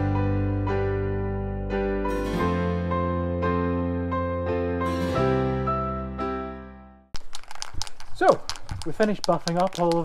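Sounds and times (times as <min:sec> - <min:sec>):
soft piano music: 0:00.0 - 0:07.0
sharp rattling clicks: 0:07.2 - 0:10.0.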